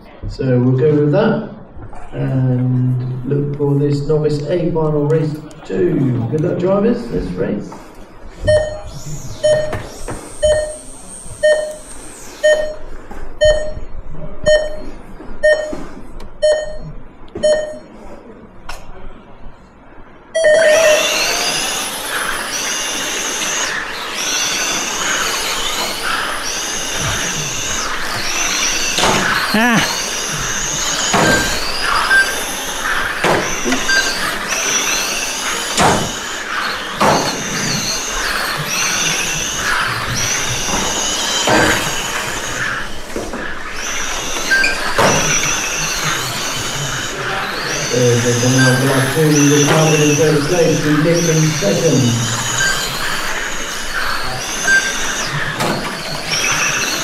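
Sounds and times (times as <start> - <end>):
timing system short beeps: 8.4 - 18.0
electric model car motors whining: 20.4 - 57.0.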